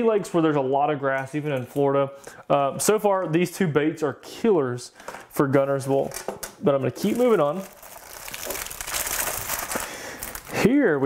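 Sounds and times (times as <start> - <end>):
plastic packaging crinkling: 6.9 - 10.7.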